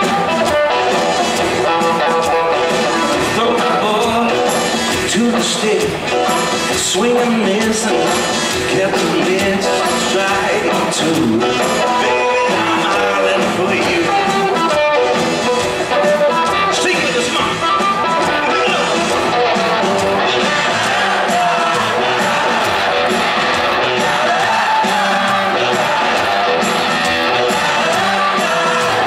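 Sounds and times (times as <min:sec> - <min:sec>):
electric guitars: 0:00.0 - 0:29.0
steady drum beat: 0:00.0 - 0:29.0.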